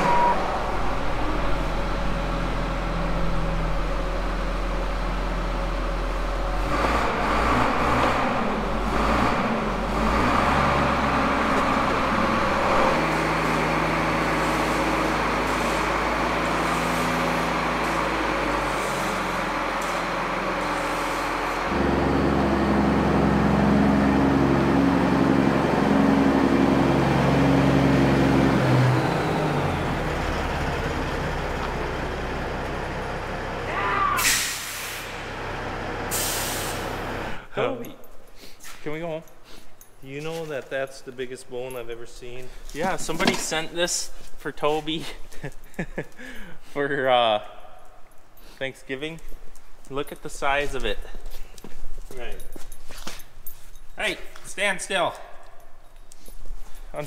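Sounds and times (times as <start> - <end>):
heavy diesel engines running: 0.0 - 37.8.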